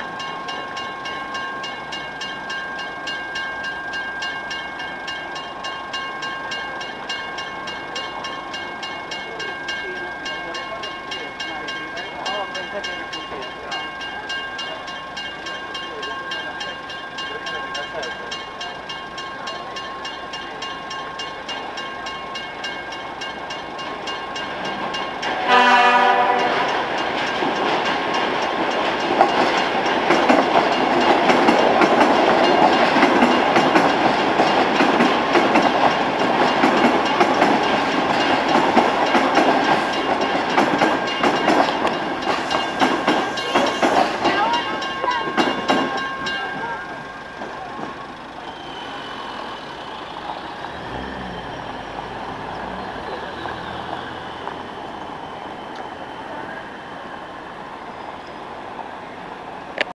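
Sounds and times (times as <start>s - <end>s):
train wheels clattering over rails: 0.0s - 56.8s
crossing warning bell ringing: 0.0s - 59.9s
train horn blast: 25.4s - 26.9s.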